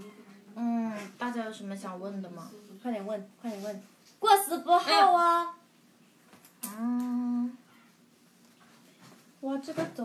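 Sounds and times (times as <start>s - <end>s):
woman humming: 6.6s - 7.6s.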